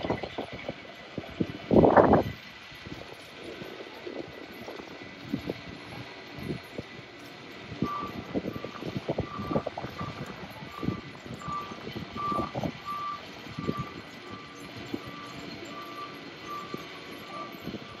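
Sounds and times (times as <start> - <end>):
short electronic beeps: 7.8 - 18.0.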